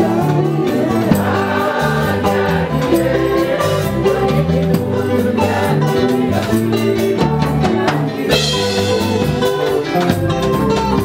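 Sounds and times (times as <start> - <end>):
choir singing gospel: 0.0 - 11.0
light percussion: 0.0 - 11.0
low bass line: 0.0 - 11.0.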